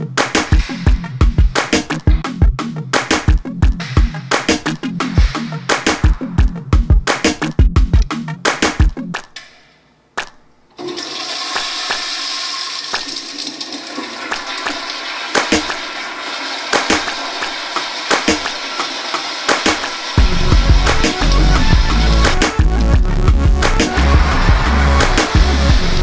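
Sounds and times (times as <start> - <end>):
music with heavy bass: 0.0 - 9.2, 20.2 - 26.0
toilet flushing: 10.8 - 22.4.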